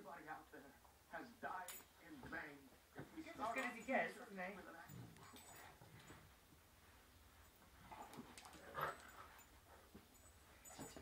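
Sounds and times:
dogs play-fighting: 0:04.6 - 0:11.0.

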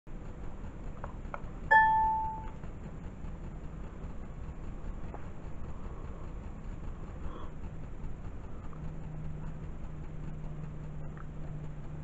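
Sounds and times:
steady low hum: 0:00.1 - 0:12.0
bright electronic ding: 0:01.7 - 0:02.6.

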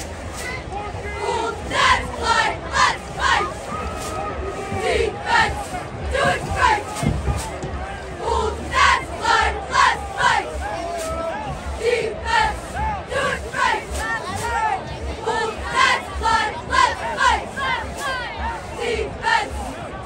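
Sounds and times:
crowd shouting: 0:00.0 - 0:20.0.

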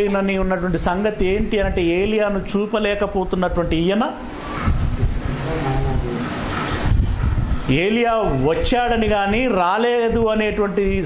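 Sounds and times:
speech: 0:07.7 - 0:11.0.

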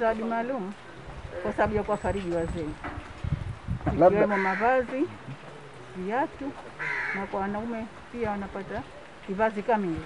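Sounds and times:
woman speaking: 0:00.0 - 0:00.8, 0:01.4 - 0:02.8, 0:03.9 - 0:05.2, 0:06.0 - 0:10.0.

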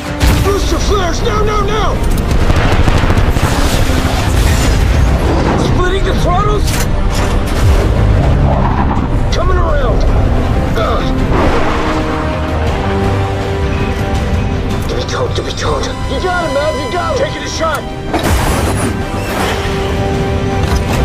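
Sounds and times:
dramatic music: 0:00.0 - 0:21.0
jet fighter roar with booms: 0:01.1 - 0:09.3
pilots shouting calls: 0:15.0 - 0:18.0.

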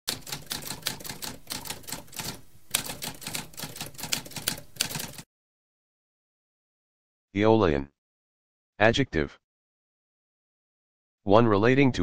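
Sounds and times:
typewriter typing: 0:00.1 - 0:05.2.

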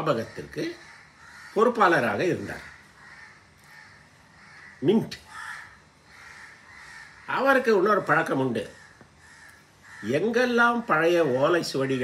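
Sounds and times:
crows cawing faintly: 0:00.0 - 0:12.0.

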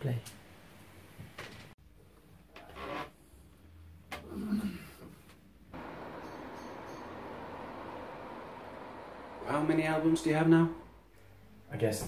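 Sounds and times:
street ambience hiss: 0:05.8 - 0:11.0.

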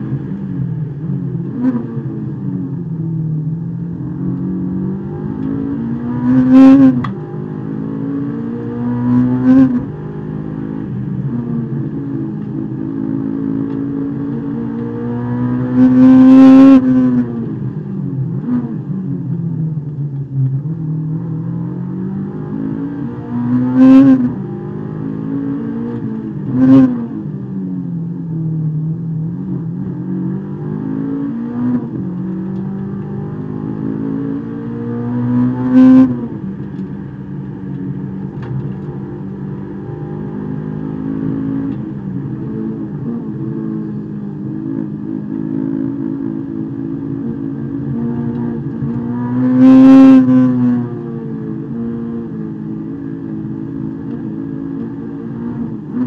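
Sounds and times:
car engine from inside cabin: 0:00.0 - 0:56.0.

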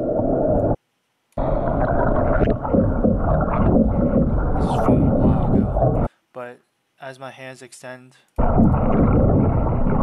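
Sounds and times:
underwater rumble: 0:01.4 - 0:06.1, 0:08.4 - 0:10.0.

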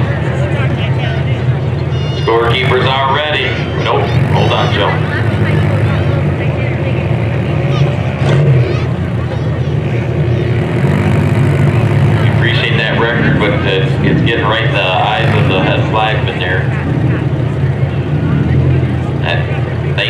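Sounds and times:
cars idling: 0:00.0 - 0:20.0
indistinct voices: 0:00.0 - 0:20.0.

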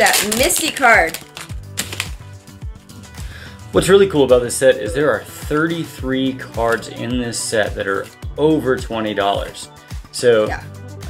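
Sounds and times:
trading cards flipped by hand: 0:00.0 - 0:02.3
background music with steady beat: 0:00.0 - 0:11.0.

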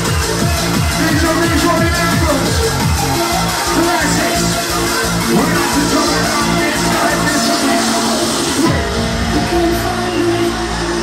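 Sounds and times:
hardcore dance music: 0:00.0 - 0:11.0.

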